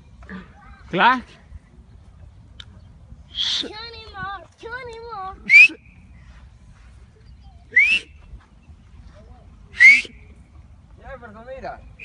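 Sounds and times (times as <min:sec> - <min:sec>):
person whistling: 0:05.5 - 0:05.8, 0:07.7 - 0:08.1, 0:09.8 - 0:10.1.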